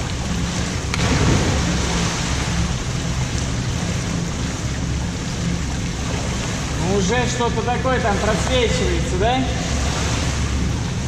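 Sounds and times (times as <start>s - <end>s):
splash into pool: 0.9s - 2.4s.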